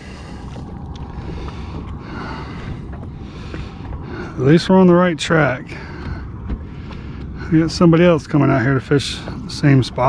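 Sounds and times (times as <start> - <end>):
low rumble: 0.0 - 10.0
sea noise: 0.0 - 10.0
wind: 0.0 - 10.0.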